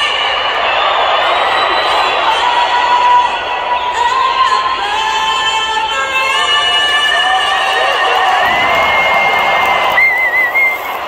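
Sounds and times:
loud piercing whistle: 0.0 - 5.6, 6.3 - 11.0
stadium crowd cheering: 0.0 - 11.0.

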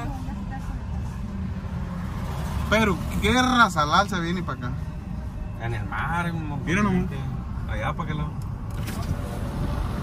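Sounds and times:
car engine rumble: 0.0 - 10.0
road noise: 0.0 - 10.0.

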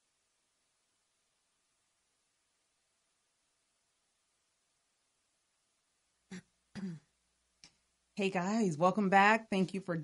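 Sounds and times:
woman clearing her throat: 6.3 - 7.1.

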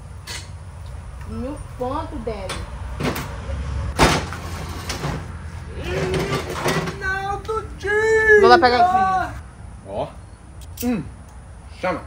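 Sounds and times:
folding table knocking down: 4.0 - 7.1.

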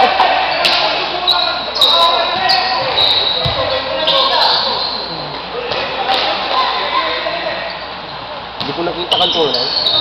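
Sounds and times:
voices in echoing hall: 0.0 - 10.0
basketball bouncing on wooden court: 3.4 - 3.7
short high-pitched squeaks: 9.1 - 10.0.

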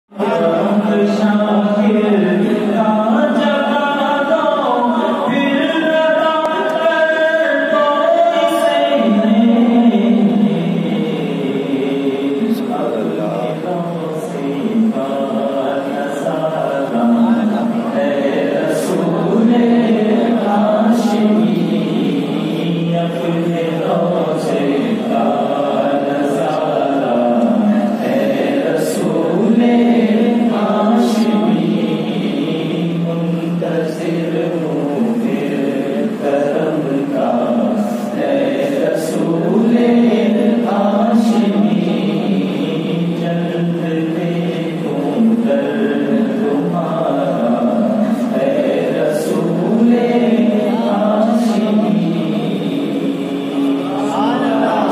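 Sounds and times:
man singing into a microphone: 0.1 - 54.9.

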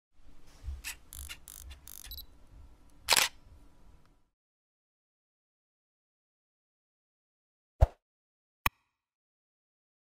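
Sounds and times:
camera mechanical whirs and clicks: 0.8 - 2.3, 3.1 - 3.4
loud shutter click: 3.1 - 3.4.

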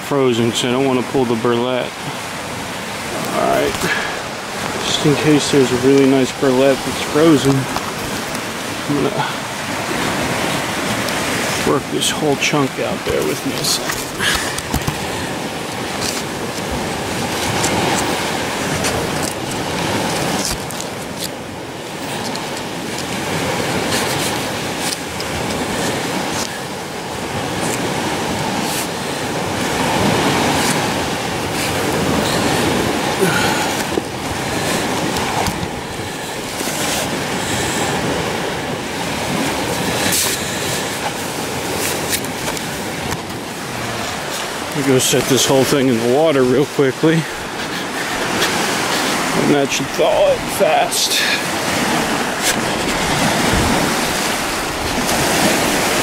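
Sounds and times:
gritty scraping of frozen sediment: 3.2 - 9.2, 10.1 - 21.4, 23.6 - 26.6.

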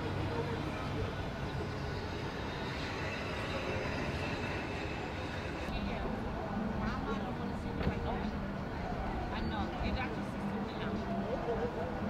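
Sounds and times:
faint high whine: 0.0 - 6.7.

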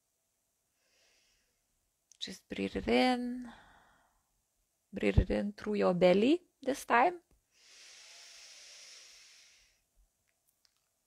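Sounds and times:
woman breathing in through nose: 0.8 - 1.6, 7.5 - 9.9.

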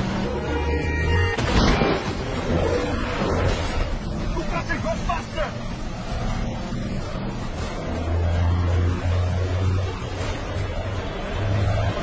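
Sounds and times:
truck engine drone: 0.0 - 12.0.

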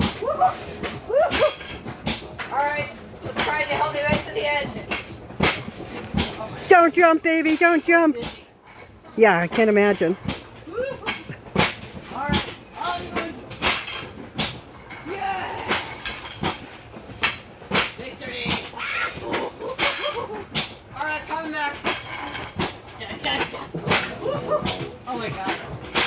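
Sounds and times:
people squealing and laughing: 0.0 - 1.7, 18.7 - 20.6, 24.0 - 24.9.

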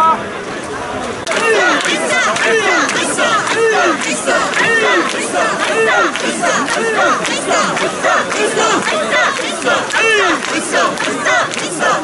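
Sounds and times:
crowd shouting rhythmic chant: 1.2 - 12.0.

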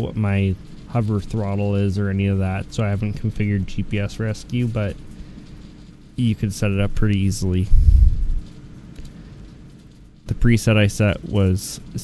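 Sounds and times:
faint steady hum: 0.0 - 12.0
low microphone rumble: 7.6 - 8.6.

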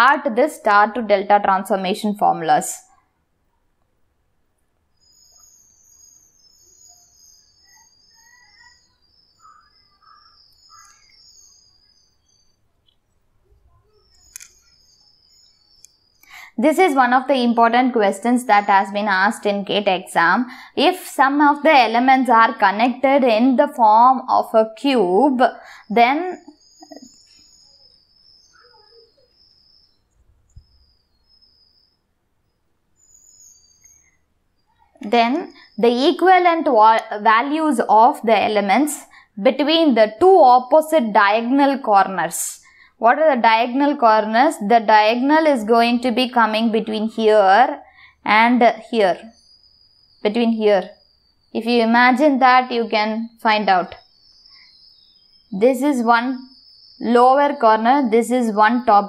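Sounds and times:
birds chirping: 4.8 - 59.0.

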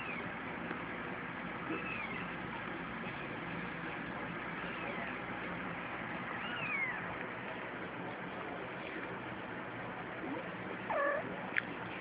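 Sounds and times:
kitten mewing: 10.9 - 11.3.

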